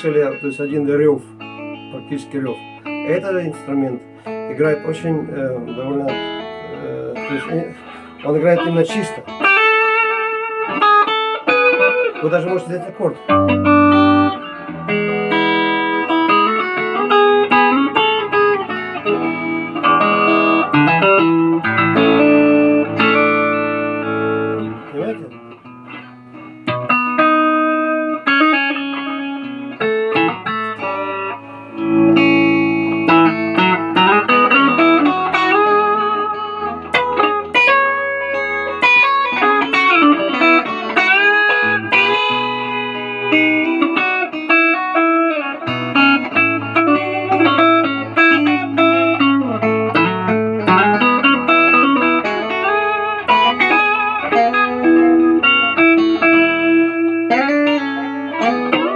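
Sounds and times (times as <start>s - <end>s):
clean electric guitar playing: 0.0s - 58.9s.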